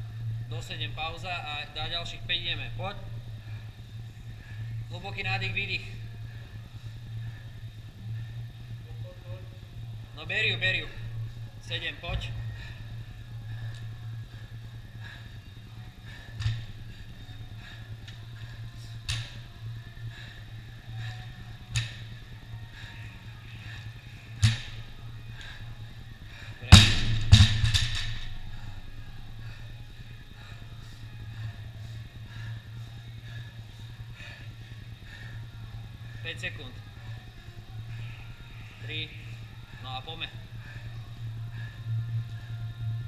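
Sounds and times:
barbell crashing onto rubber floor: 26.8 - 28.2.

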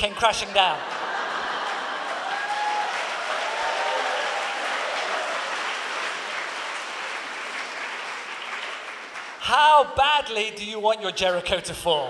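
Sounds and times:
laughter: 0.0 - 2.4
crowd applauding: 0.7 - 9.6.

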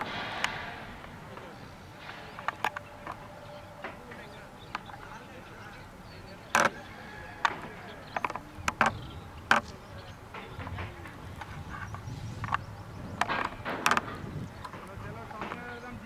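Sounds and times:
sharp clicks and knocks: 0.0 - 5.2, 6.4 - 16.0
faint distant voices: 0.0 - 16.0.

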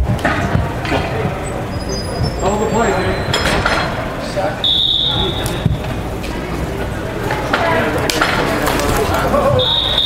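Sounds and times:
referee's whistle blast: 4.6 - 5.8, 9.6 - 10.0
lacrosse sticks clacking: 7.2 - 9.3.

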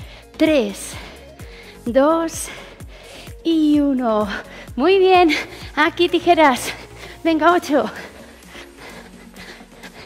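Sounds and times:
person breathing hard: 0.0 - 3.5, 4.2 - 5.8, 6.6 - 10.0
workout music: 0.0 - 10.0.

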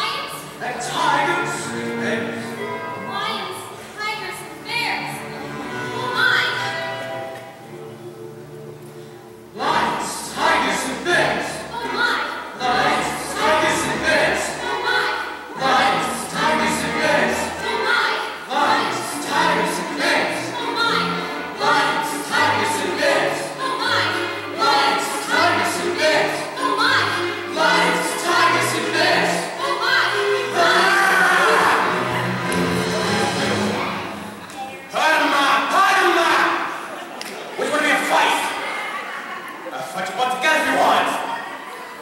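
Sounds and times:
musical accompaniment: 0.0 - 34.9
voices singing together: 9.5 - 34.4.

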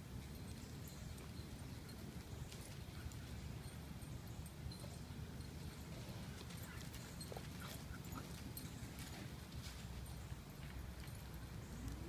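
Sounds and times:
dog paws scuffing on dirt: 6.0 - 12.0.

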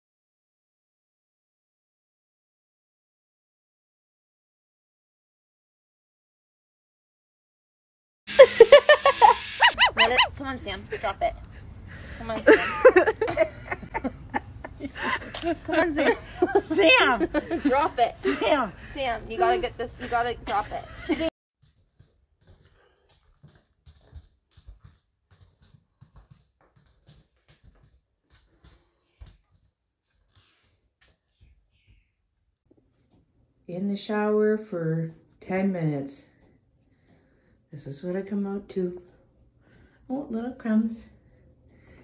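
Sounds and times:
dog rising and falling cries: 9.5 - 10.4
dog snarling and growling: 9.6 - 10.4
footsteps on wooden floor: 21.6 - 32.1.

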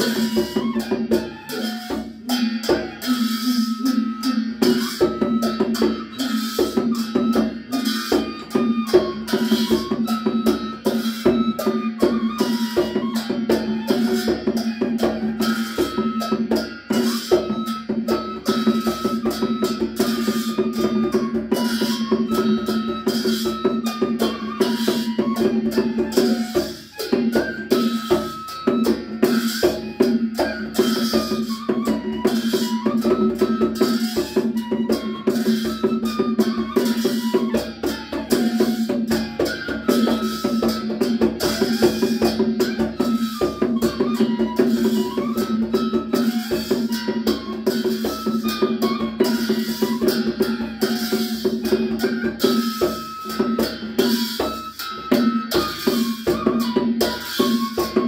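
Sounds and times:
bamboo flute melody: 0.0 - 58.0
barrel drum beat: 0.0 - 58.0
hand cymbals clashing: 0.0 - 58.0.

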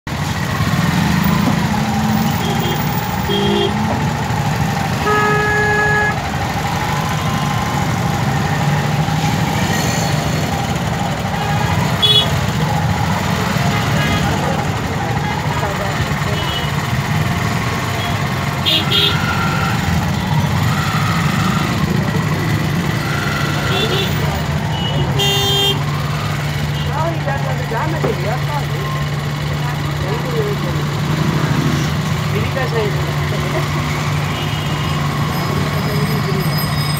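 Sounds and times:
idling traffic engines rumbling: 0.0 - 36.9
vehicle horns honking: 2.1 - 4.0, 4.9 - 6.4, 11.3 - 12.8, 13.4 - 16.9, 17.9 - 22.0, 22.6 - 27.0, 34.0 - 36.9.

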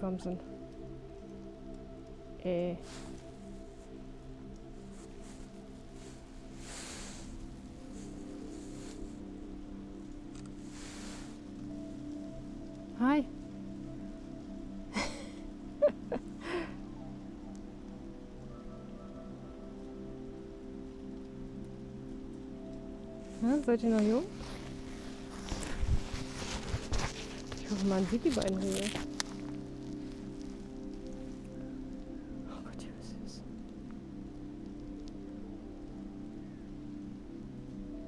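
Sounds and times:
faint hiss: 0.4 - 38.0.

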